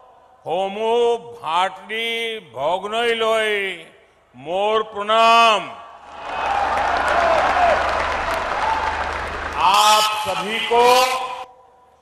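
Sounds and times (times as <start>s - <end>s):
crowd applauding: 6.1s - 10.7s.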